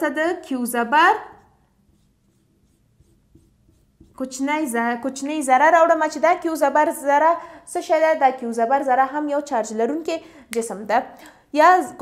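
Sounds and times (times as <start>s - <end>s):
marker scratching on whiteboard: 1.2s - 4.7s.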